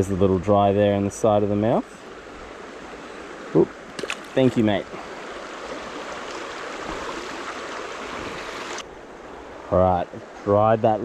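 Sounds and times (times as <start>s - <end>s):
stream flowing: 0.0s - 11.0s.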